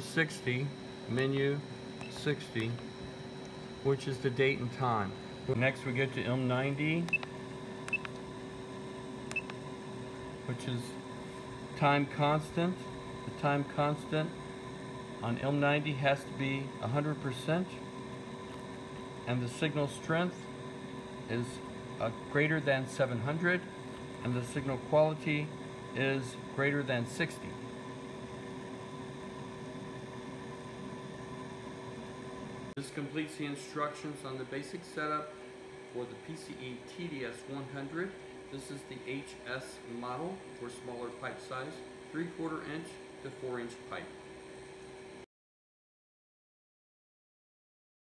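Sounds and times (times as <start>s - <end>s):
background hum and hiss: 0.0s - 45.3s.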